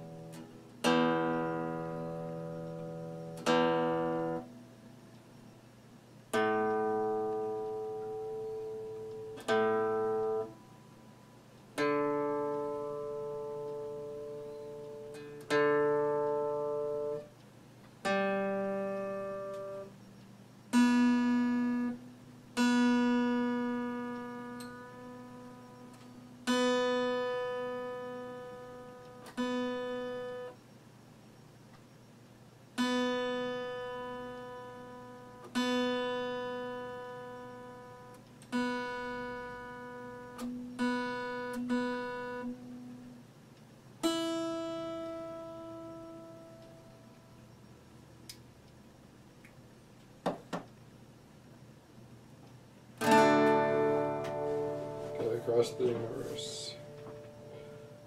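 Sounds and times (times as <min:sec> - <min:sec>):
acoustic guitar chords ringing: 0:00.0 - 0:58.0.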